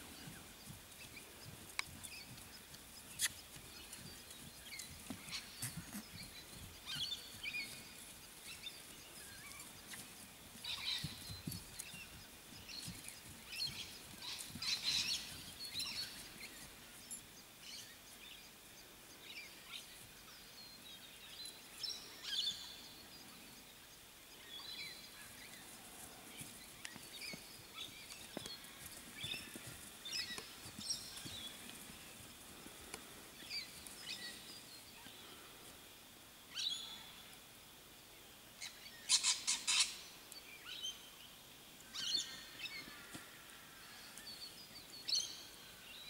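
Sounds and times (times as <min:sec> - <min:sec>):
birds calling and chirping: 0:00.0 - 0:18.5, 0:24.4 - 0:35.6, 0:38.6 - 0:41.0.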